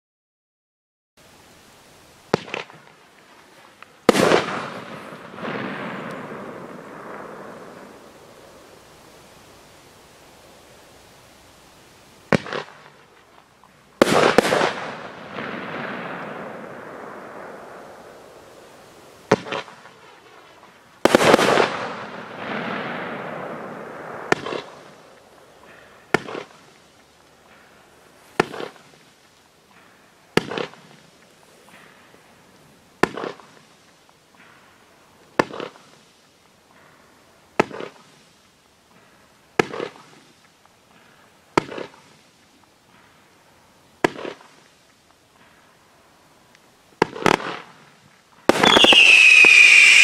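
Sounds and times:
firework launch report: 2.2 - 36.9, 46.9 - 50.0
firework burst bang: 4.1 - 8.0, 21.0 - 25.2, 48.5 - 50.0.

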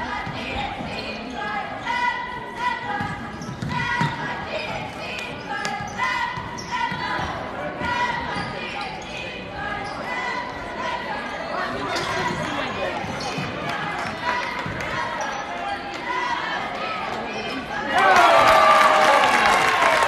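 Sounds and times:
sneakers squeaking: 0.1 - 15.8.

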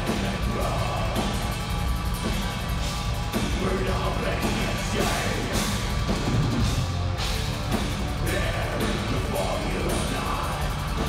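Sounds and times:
distorted electric guitar: 0.0 - 11.0
drum kit: 0.0 - 11.0.

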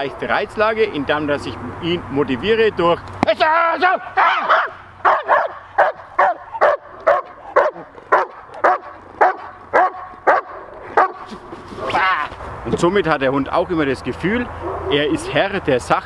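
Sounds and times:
dog barking: 4.2 - 11.3.

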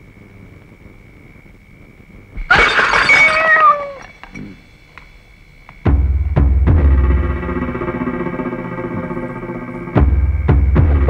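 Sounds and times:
faint steady hum: 0.0 - 11.0
cat yowling: 2.5 - 4.3.

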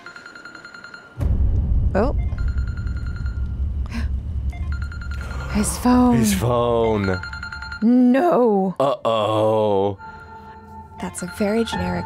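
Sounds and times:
phone ringtone high tone: 0.0 - 1.2, 2.3 - 3.5, 4.6 - 5.9, 6.7 - 8.3, 10.0 - 12.0
loud deep low sound: 1.2 - 7.0.

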